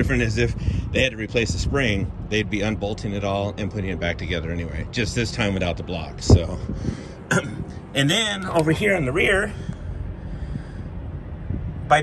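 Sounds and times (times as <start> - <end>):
man's voice: 0.0 - 9.7
low rumble: 0.0 - 12.0.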